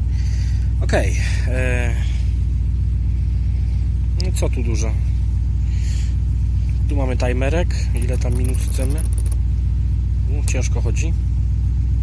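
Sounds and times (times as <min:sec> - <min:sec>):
steady pulsing low rumble: 0:00.0 - 0:12.0.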